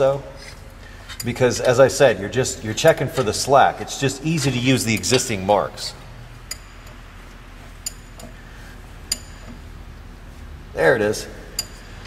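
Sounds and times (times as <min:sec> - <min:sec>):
ratchet clicking: 0:06.5 - 0:07.0, 0:09.1 - 0:09.7, 0:11.5 - 0:12.0.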